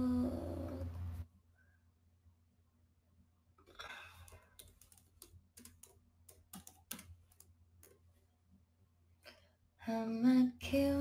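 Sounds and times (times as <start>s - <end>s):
woman singing a long note: 0.0s - 0.9s.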